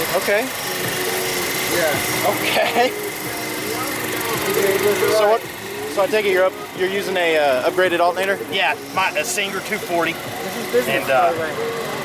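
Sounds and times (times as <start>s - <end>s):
people talking: 0.0s - 0.6s, 1.7s - 12.0s
car engine idling with whine: 0.0s - 12.0s.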